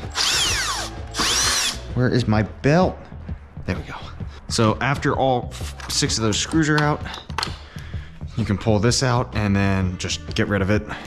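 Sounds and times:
cordless drill motor whine: 0.1 - 1.8.

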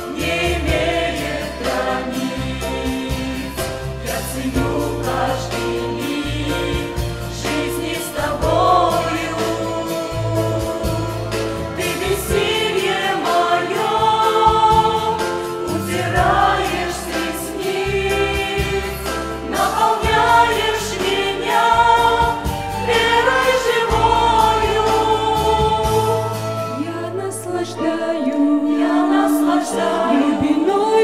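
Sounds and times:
choir singing a hymn: 0.0 - 31.0.

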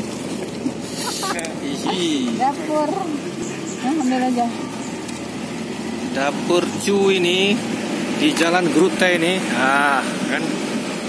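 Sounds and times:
people talking indistinctly: 1.0 - 10.6.

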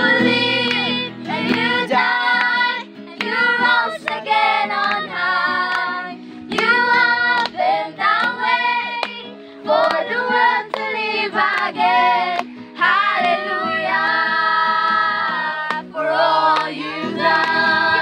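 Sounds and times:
strummed acoustic guitar: 0.0 - 18.0
young voices singing in unison: 0.0 - 18.0
hand claps: 0.1 - 13.4, 15.6 - 18.0.

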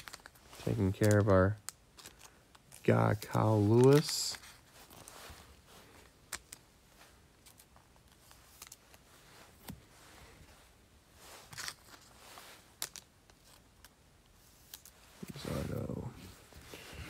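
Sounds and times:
cards rustling in plastic sleeves: 0.0 - 17.0.

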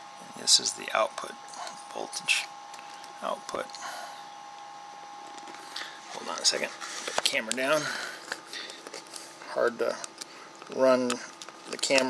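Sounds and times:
low room hiss: 0.0 - 12.0
faint handling sounds: 1.2 - 12.0.

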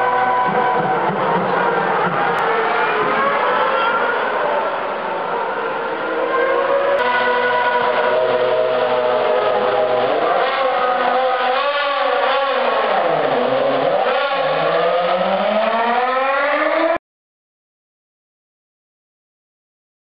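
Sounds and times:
racing car engine: 0.0 - 17.0.

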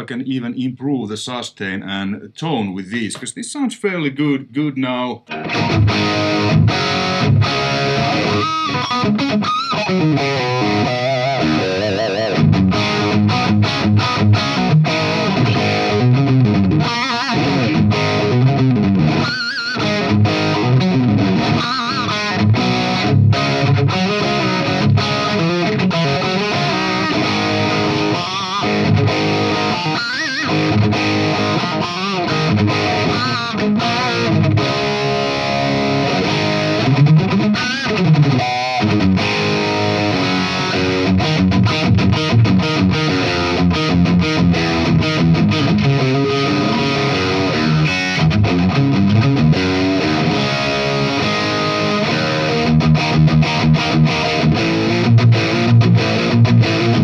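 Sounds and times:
distorted electric guitar riffs: 4.6 - 57.0.

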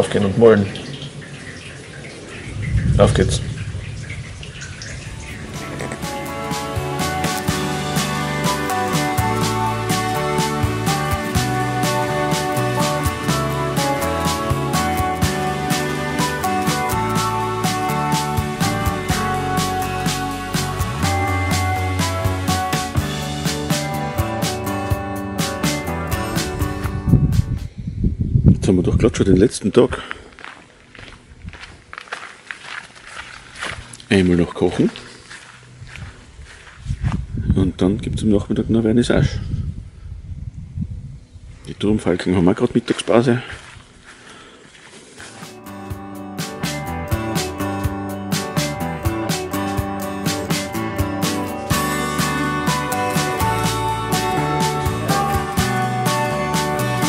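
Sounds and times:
soft water noise: 0.0 - 6.8
water dripping: 0.0 - 8.8
background music: 5.1 - 27.7, 45.2 - 57.0
soft footsteps walking: 30.1 - 37.4, 42.8 - 46.0.

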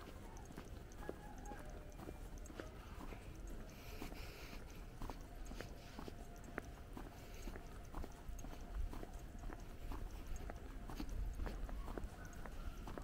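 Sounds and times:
footsteps on brick pavement: 0.0 - 13.0.

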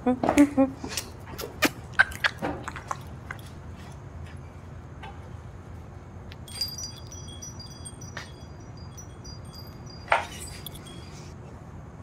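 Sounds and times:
wind chimes tinkling: 6.4 - 11.4.

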